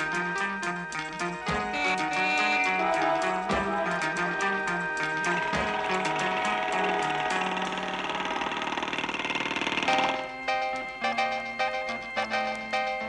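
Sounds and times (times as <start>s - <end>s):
rock band instrumental: 0.0s - 9.0s, 9.6s - 13.0s
jackhammer rattling: 5.6s - 10.3s.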